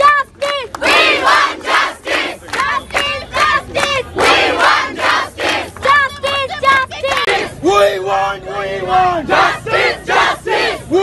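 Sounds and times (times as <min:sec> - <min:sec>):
crowd chanting slogans: 0:00.0 - 0:11.0.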